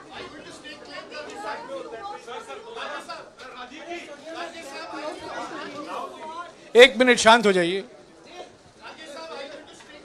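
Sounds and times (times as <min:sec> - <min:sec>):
crowd chattering and calling out: 0:00.0 - 0:10.0.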